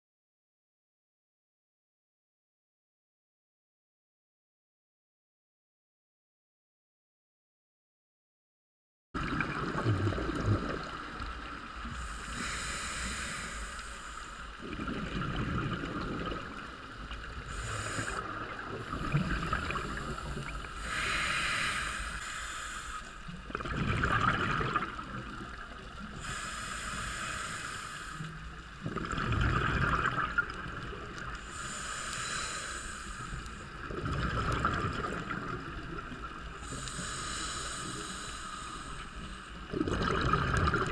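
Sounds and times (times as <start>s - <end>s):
exhaled bubbles rushing: 9.2s - 11.4s, 14.6s - 16.7s, 17.3s - 20.6s, 23.5s - 25.5s, 28.8s - 31.3s, 33.8s - 36.2s, 39.7s - 40.9s
scuba regulator inhale hiss: 11.8s - 14.6s, 17.3s - 23.4s, 26.1s - 28.4s, 31.3s - 33.8s, 36.6s - 39.6s.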